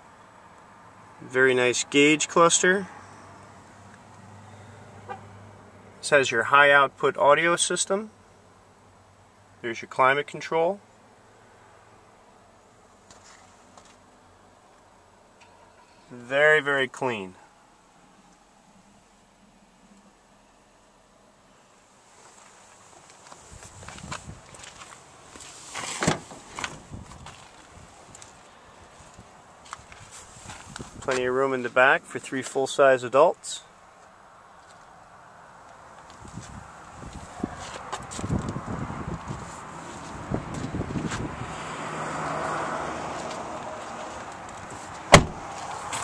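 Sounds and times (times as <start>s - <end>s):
footsteps on gravel: 22.2s - 25.6s, 26.5s - 28.4s, 29.0s - 31.2s
handling noise: 43.3s - 46.0s.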